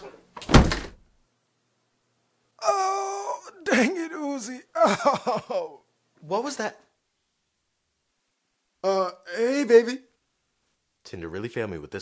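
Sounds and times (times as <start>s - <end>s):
body thudding on floor: 0.4s - 1.0s.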